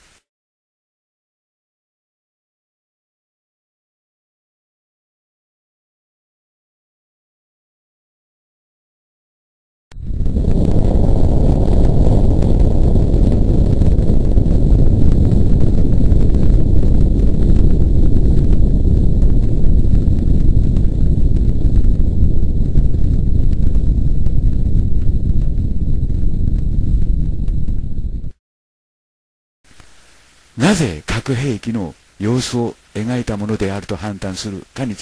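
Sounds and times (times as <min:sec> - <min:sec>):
deep explosion rumble: 0:10.0 - 0:28.4.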